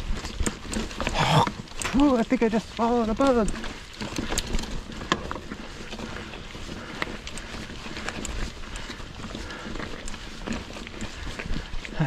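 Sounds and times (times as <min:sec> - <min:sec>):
bike clicks and rattles: 0:00.0 - 0:12.0
bike tyres rolling over stones: 0:00.0 - 0:12.0.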